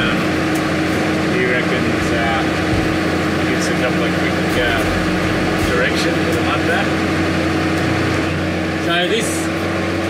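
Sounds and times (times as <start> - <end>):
vehicle engine drone: 0.0 - 10.0.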